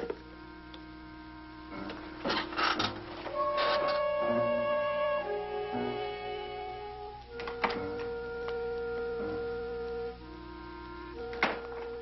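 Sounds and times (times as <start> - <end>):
orchestral music sustained tones: 0.0 - 12.0.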